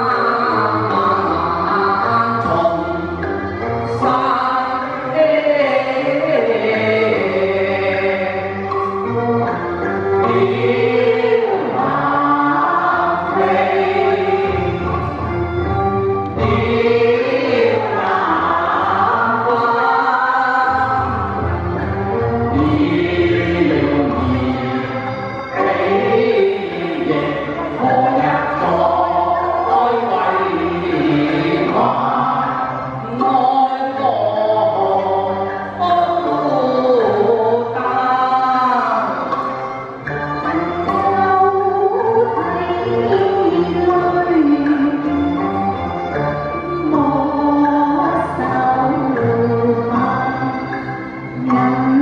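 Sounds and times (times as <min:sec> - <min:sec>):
backing music with bass pulse: 0:00.0 - 0:52.0
instrumental accompaniment: 0:00.0 - 0:52.0
man and woman singing duet: 0:00.0 - 0:52.0.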